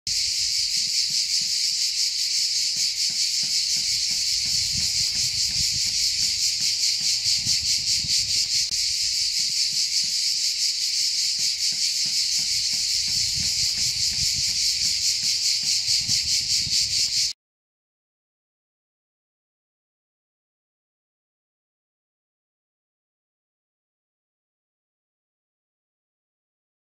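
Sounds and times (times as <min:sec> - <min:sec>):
cicadas buzzing: 0:00.1 - 0:17.4.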